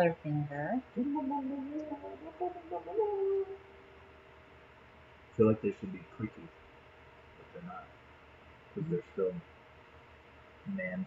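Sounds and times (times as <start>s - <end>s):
person holding a long vowel: 1.0s - 3.8s, 5.4s - 6.4s.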